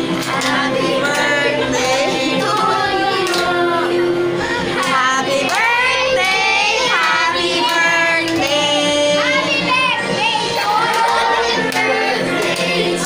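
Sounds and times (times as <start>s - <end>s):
musical accompaniment: 0.0s - 13.0s
high child-like singing voice: 8.5s - 11.8s.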